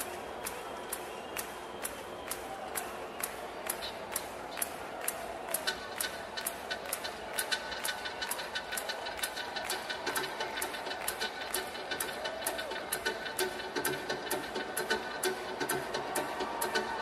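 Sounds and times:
electronic dance music: 3.6 - 17.0.

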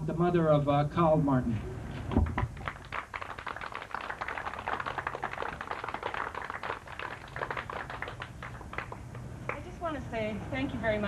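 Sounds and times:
small crowd applauding: 2.2 - 9.7.

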